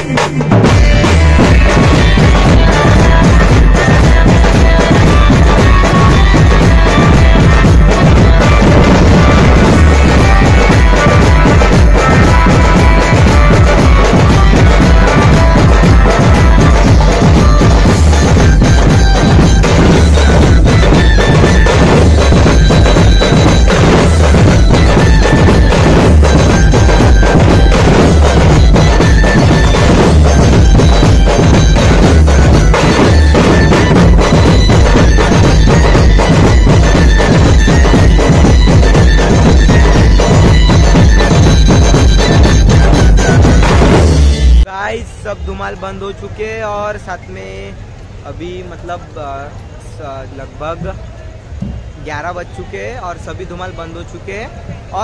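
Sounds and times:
large drums beating: 0:00.0 - 0:44.7
reedy wind instrument melody: 0:00.7 - 0:44.7.

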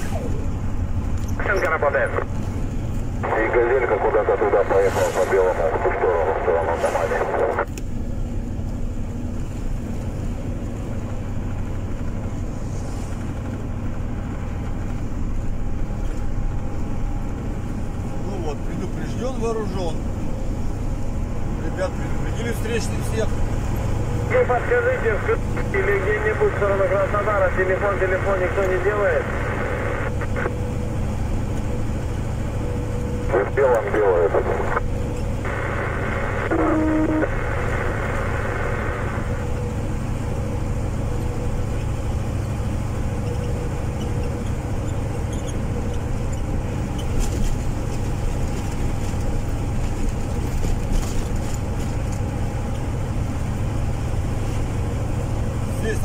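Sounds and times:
vehicle engine and tyre drone: 0:00.0 - 0:56.0.

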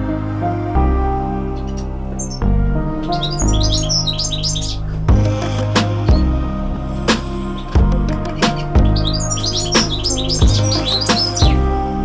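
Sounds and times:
background music: 0:00.0 - 0:12.0
bird chirping: 0:01.5 - 0:06.4, 0:07.0 - 0:11.9.

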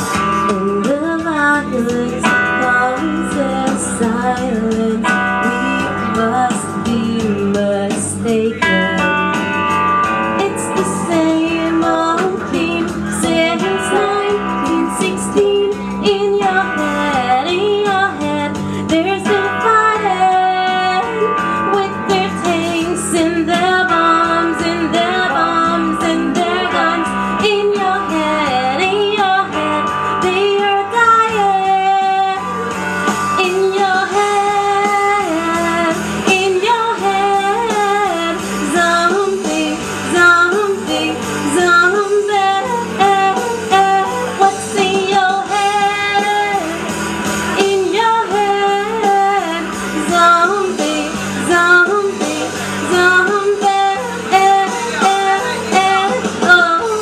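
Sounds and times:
karaoke backing track with guitar: 0:00.0 - 0:57.0
woman singing: 0:00.0 - 0:57.0.

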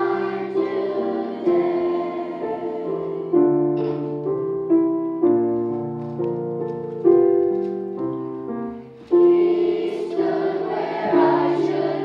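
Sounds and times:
children's choir singing: 0:00.0 - 0:04.5, 0:08.9 - 0:12.0
piano chords: 0:00.0 - 0:12.0.

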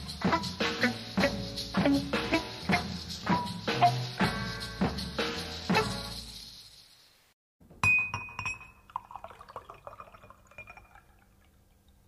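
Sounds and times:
sharp glass clink: 0:07.8 - 0:09.2
small glassy clinks and rattles: 0:07.8 - 0:09.4.

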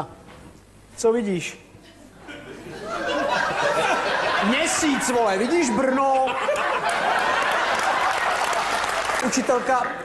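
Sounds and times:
audience laughter: 0:02.2 - 0:09.6
audience applause: 0:06.0 - 0:10.0.

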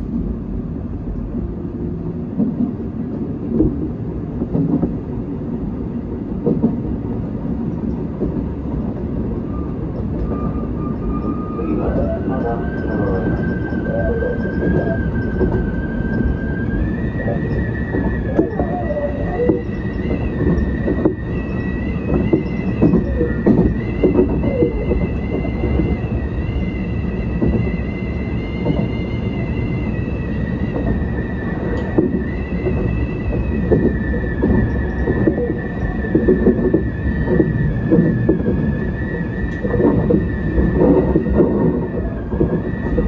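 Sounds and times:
train wheels rumbling on rail: 0:00.0 - 0:43.0.

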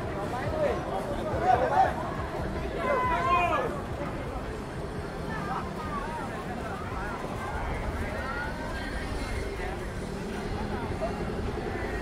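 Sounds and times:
faint voices of people: 0:00.0 - 0:12.0.

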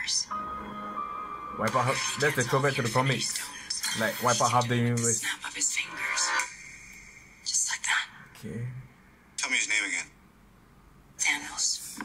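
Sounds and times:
person whispering: 0:05.0 - 0:06.9.

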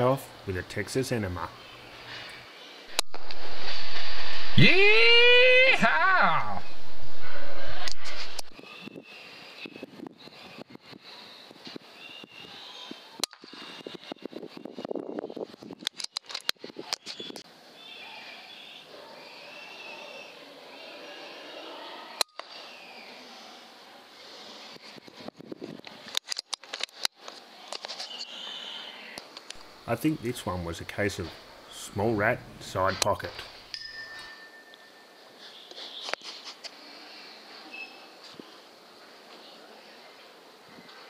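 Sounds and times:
faint high chirping: 0:36.9 - 0:38.2.

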